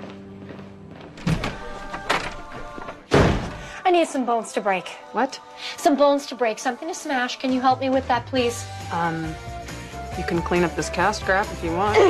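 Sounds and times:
soft background music: 0.0s - 12.0s
heavy smashing blows: 3.1s - 3.7s.

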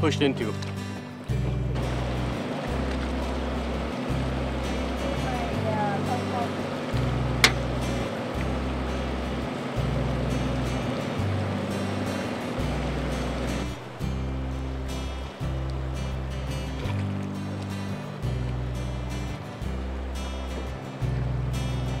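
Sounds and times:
background music with bass line: 0.0s - 22.0s.

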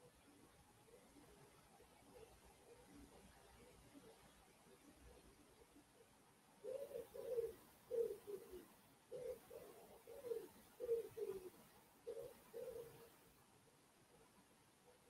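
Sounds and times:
pigeon cooing: 4.8s - 13.2s.

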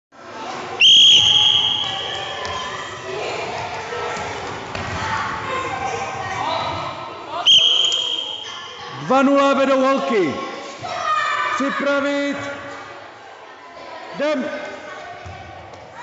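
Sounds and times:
whistle blasts: 0.8s - 2.4s, 7.4s - 8.8s
children's voices: 1.9s - 7.4s, 8.4s - 9.2s, 10.1s - 11.9s, 12.6s - 16.0s.

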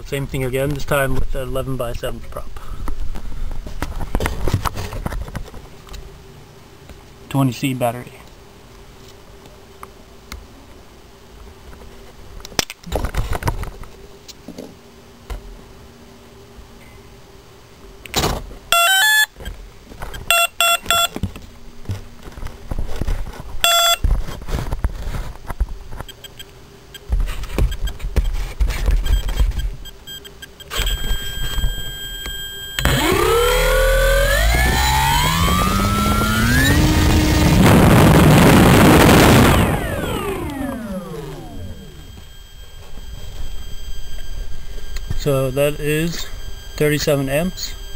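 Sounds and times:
short electronic beeps: 20.2s - 21.1s, 23.6s - 24.0s, 26.1s - 27.1s, 29.0s - 33.6s, 39.5s - 47.9s
electric motor and propeller whine: 30.7s - 47.9s.

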